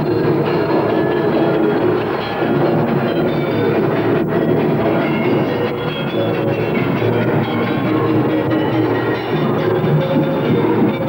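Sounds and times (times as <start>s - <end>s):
live music with percussion: 0.0s - 11.0s.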